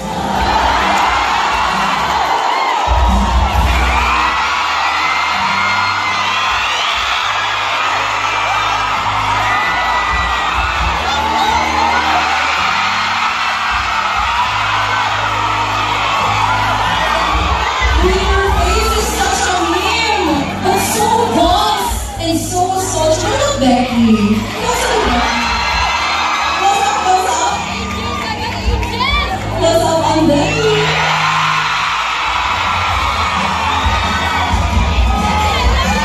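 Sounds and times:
crowd screaming and cheering: 0:00.0 - 0:36.0
music over sound system: 0:00.0 - 0:36.0.

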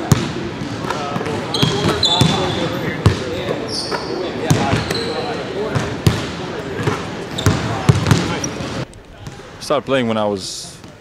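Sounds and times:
basketballs bouncing: 0:00.0 - 0:09.4.

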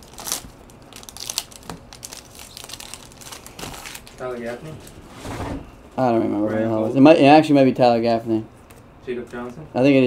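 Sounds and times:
foil wrapper crinkling: 0:00.0 - 0:04.6.

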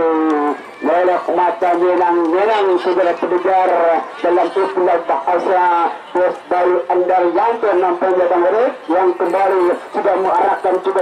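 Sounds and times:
man commentating: 0:00.0 - 0:11.0.

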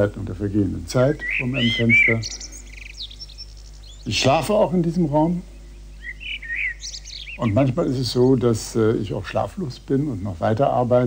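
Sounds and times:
songbird chirping and trilling: 0:00.0 - 0:11.0.

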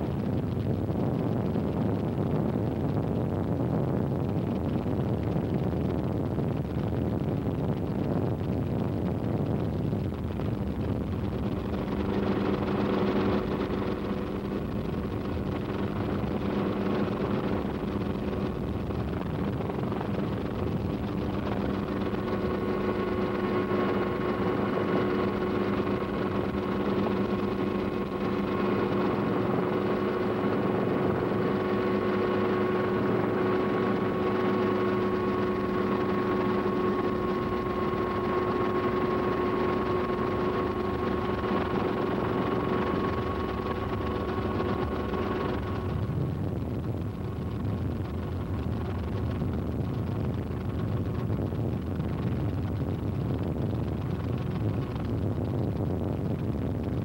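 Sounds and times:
helicopter rotor rush: 0:11.1 - 0:46.5.

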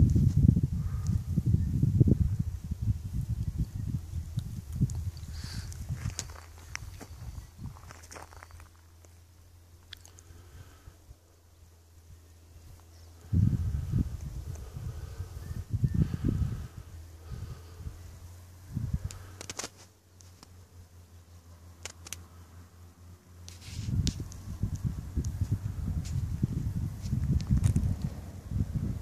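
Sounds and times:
wind buffeting microphone: 0:00.0 - 0:08.6, 0:12.5 - 0:19.5, 0:23.6 - 0:29.0.

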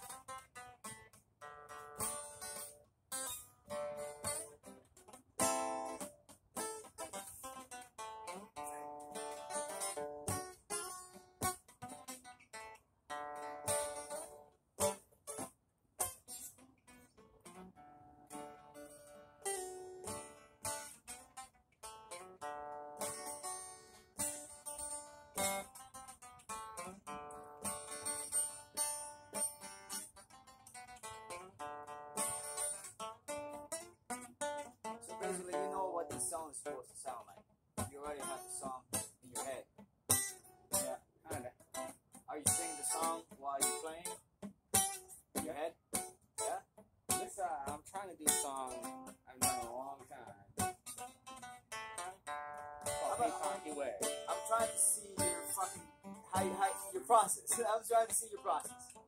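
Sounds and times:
acoustic guitar picking: 0:00.0 - 0:59.0.

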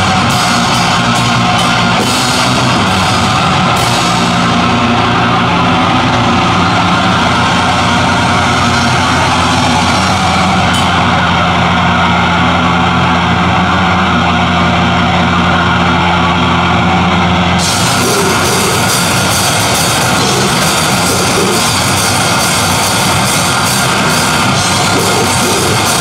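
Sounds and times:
distorted guitar and bass drone: 0:00.0 - 0:26.0.

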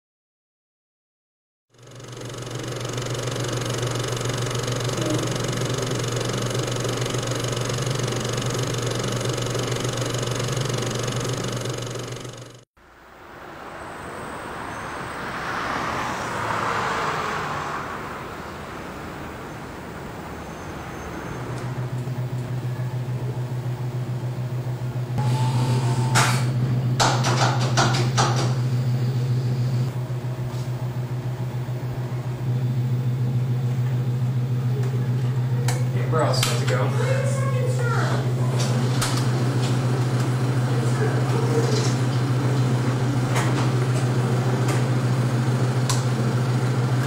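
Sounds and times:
projector equipment humming: 0:01.9 - 0:12.6
vehicle passing: 0:12.8 - 0:21.9.

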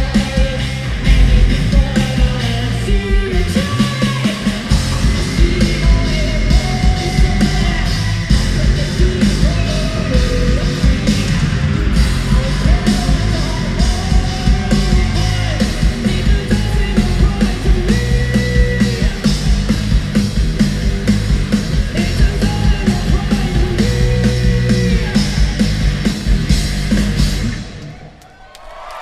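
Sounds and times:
person singing: 0:00.0 - 0:11.5, 0:21.9 - 0:25.5
distorted electric guitar: 0:00.0 - 0:27.8
drum kit pounding: 0:00.0 - 0:27.8
bass guitar: 0:00.0 - 0:28.0.

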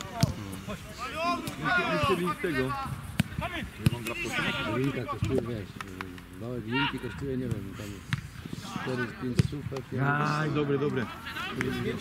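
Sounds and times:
people talking: 0:00.0 - 0:08.0, 0:08.6 - 0:12.0.

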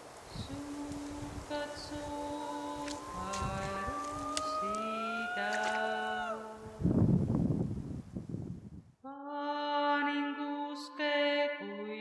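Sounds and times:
rough rustling noise: 0:00.0 - 0:08.7
folk song in long held notes: 0:00.3 - 0:07.0.

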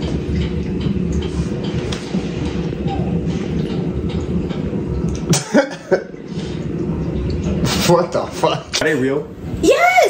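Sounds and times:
low room drone: 0:00.0 - 0:10.0.

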